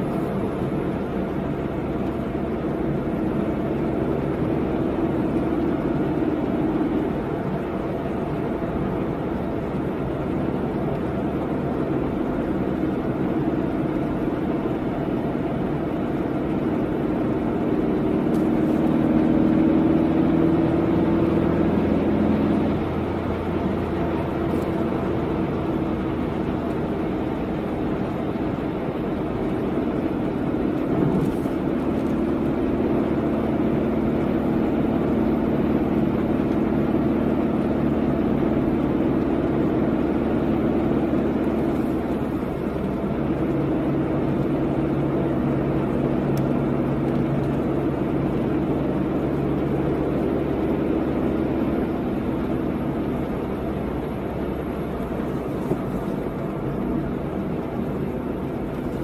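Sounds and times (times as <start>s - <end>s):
car engine hum: 0.0s - 59.0s
tyre and road noise: 0.0s - 59.0s.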